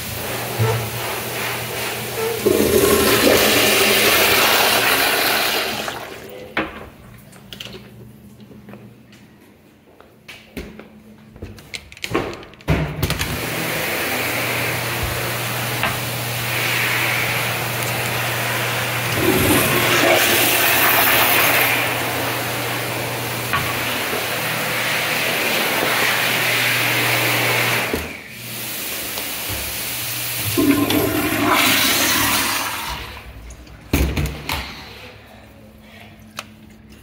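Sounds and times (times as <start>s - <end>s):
toilet flushing: 0.0s - 6.6s, 13.2s - 35.0s.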